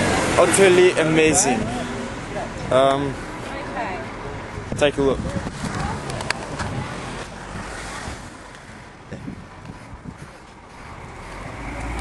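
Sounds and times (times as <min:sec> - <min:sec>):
wind buffeting microphone: 0:04.4 - 0:12.0.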